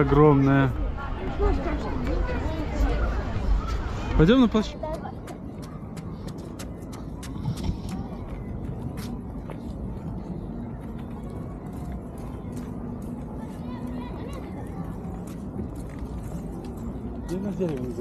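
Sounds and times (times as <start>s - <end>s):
footsteps on paving stones: 1.4s - 18.0s.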